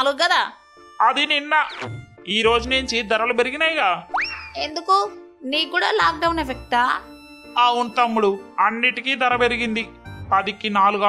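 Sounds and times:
background music: 0.0 - 11.0
person speaking: 7.6 - 11.0.

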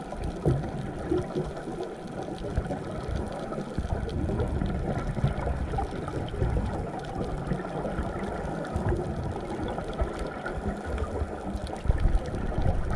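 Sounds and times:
faint crackling clicks: 0.0 - 12.9
low rumbling underwater noise: 0.0 - 12.9.

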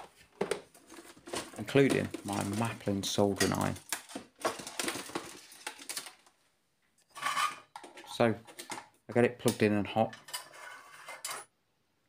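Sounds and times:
tools clattering in plastic toolbox: 0.0 - 6.3, 7.1 - 11.5.

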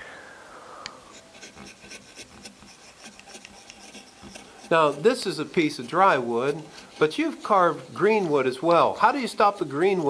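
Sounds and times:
gouge scratching wood: 1.1 - 10.0.

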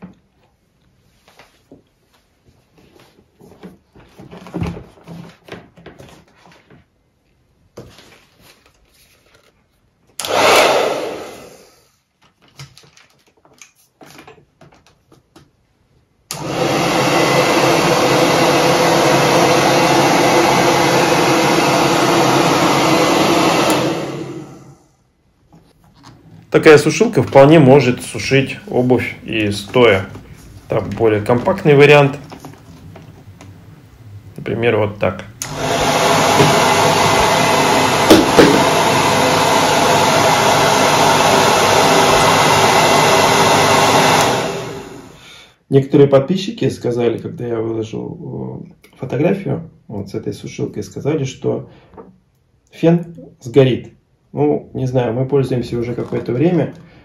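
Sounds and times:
hair dryer blowing: 10.2 - 12.0, 16.3 - 25.0, 35.4 - 45.3.

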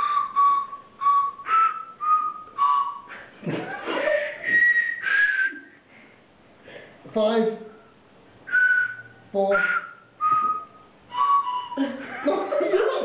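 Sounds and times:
toy whistles playing a tune: 0.0 - 3.2, 4.4 - 5.8, 7.7 - 11.9.

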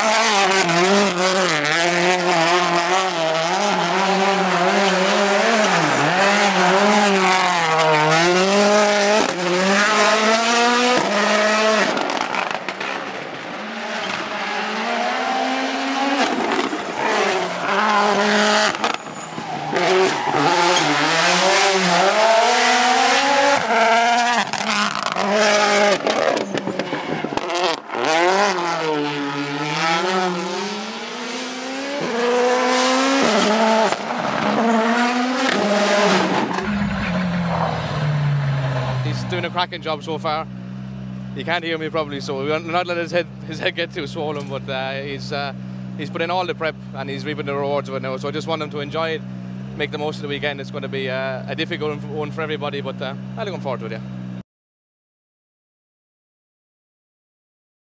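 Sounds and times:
rally car engine revving: 0.0 - 54.4.

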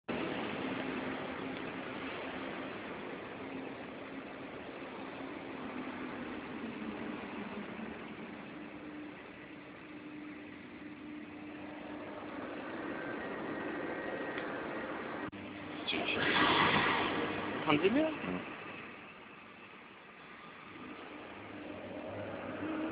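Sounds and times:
machinery running: 0.1 - 22.9.

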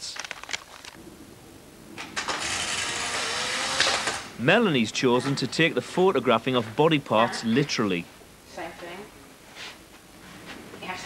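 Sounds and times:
small motorised machine whirring: 2.3 - 4.3.

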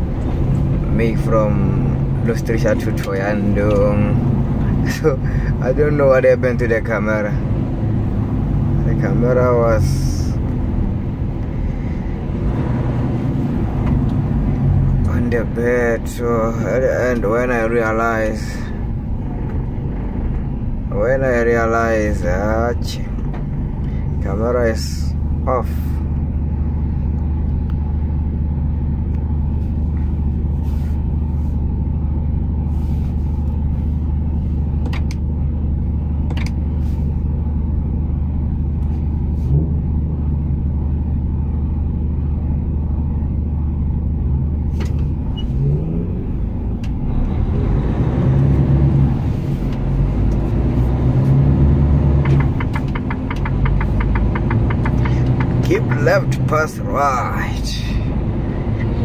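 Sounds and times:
diesel truck engine: 0.0 - 59.0.

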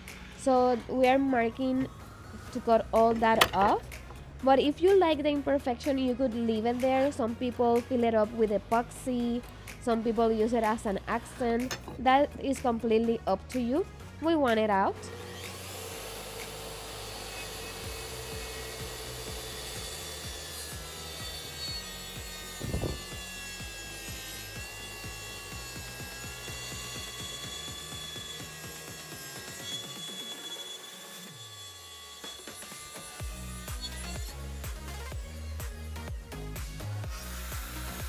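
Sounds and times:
background music: 0.0 - 38.0
track saw cutting wood: 14.9 - 36.1, 37.0 - 38.0.

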